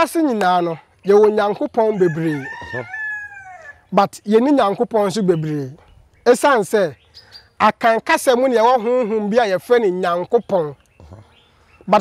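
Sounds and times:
rooster crowing: 1.9 - 3.8.

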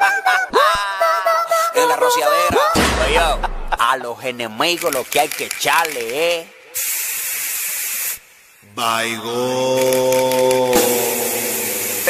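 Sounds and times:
hiss-like noise effect: 6.7 - 8.4, 9.9 - 12.0.

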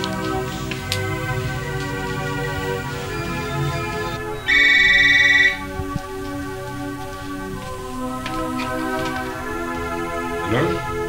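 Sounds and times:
film score music: 0.0 - 11.0
telephone ringing: 2.4 - 5.7.

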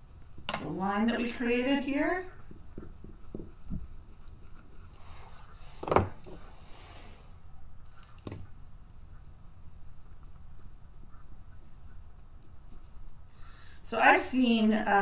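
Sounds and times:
light taps and handling noises: 2.3 - 6.6
tools knocking on work table: 2.5 - 3.8.

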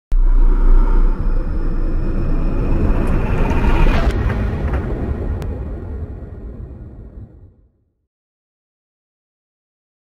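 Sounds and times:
sudden boom: 0.1 - 7.9
deep rumble: 0.1 - 8.0.

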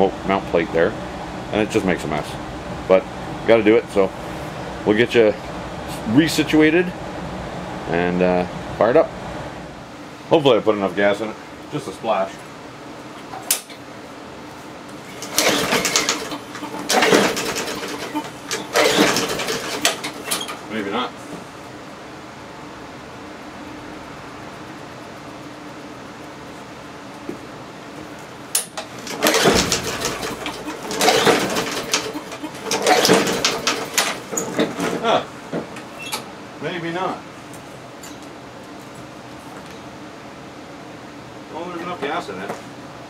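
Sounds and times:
small engine turning over: 15.1 - 20.5, 29.0 - 34.2
recoil starter pulls: 15.1 - 20.6, 28.6 - 34.9.

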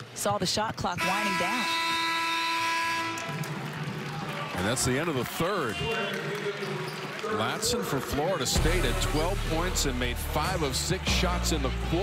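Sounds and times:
game clock horn blast: 1.0 - 3.6.

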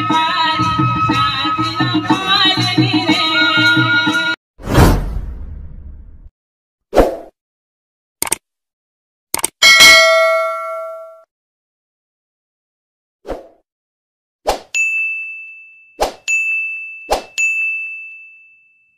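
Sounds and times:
short whooshes: 4.6 - 6.3
mouse clicks: 8.2 - 8.4, 9.4 - 9.6
chime ringing: 9.6 - 11.2
high notification bell ding: 9.6 - 11.3, 14.8 - 18.7.

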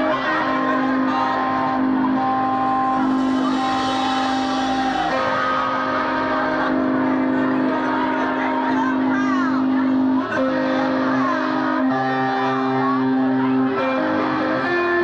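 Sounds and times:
rock band playing sustained chords: 0.0 - 15.0.

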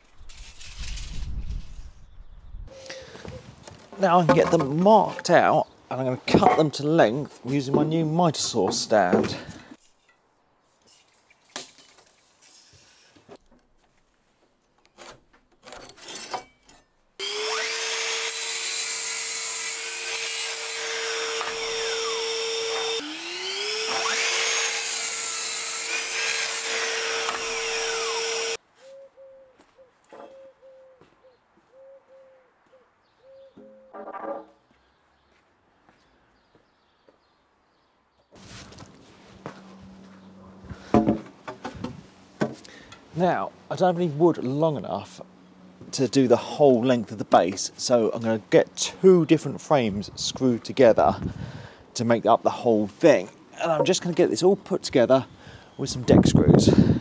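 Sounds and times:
wood being handled knocks: 3.3 - 5.3
mitre saw motor whine: 17.2 - 28.6
saw blade rasping through wood: 17.2 - 28.6.

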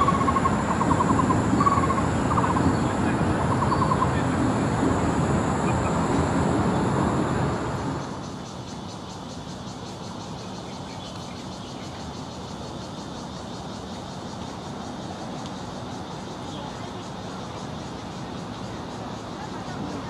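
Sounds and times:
distant traffic: 0.0 - 20.0.

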